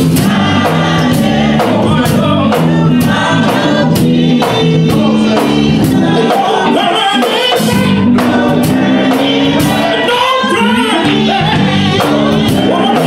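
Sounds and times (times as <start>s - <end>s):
choir singing gospel: 0.0s - 13.0s
instrumental accompaniment: 0.0s - 13.0s.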